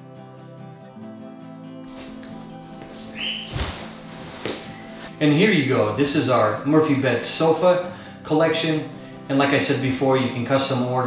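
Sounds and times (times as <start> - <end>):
soft background music: 0.0 - 11.0
handling fabric sofa cushions: 1.9 - 5.1
dull thump of sitting on sofa: 2.8 - 4.8
short squeak: 3.1 - 3.9.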